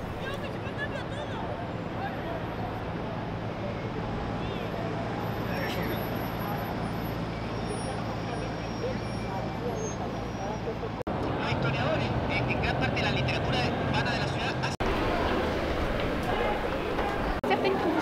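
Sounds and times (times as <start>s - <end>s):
crowd of people talking: 0.0s - 18.0s
traffic passing: 0.0s - 18.0s.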